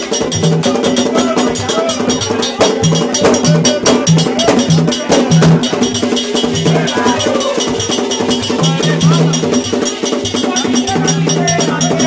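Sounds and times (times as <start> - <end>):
clattering metallic beat: 0.0 - 12.0.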